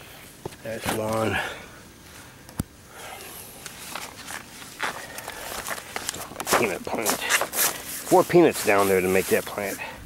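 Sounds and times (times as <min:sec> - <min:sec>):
leaves rustling: 0:00.0 - 0:10.0
footsteps crunching: 0:03.6 - 0:09.9.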